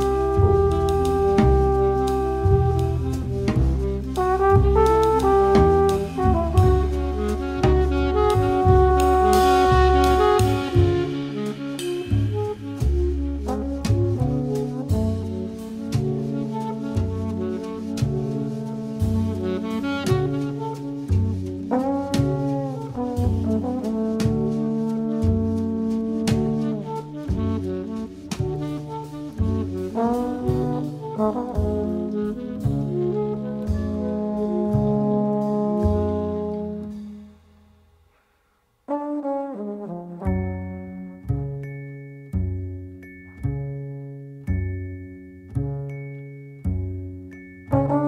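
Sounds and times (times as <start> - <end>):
drum and cymbal strikes: 0.0 - 20.9
alto saxophone melody: 0.0 - 37.4
trombone melody: 0.0 - 37.4, 38.9 - 41.7, 47.7 - 48.0
double bass: 0.0 - 38.1, 38.7 - 48.0
drums: 0.0 - 42.0, 47.2 - 48.0.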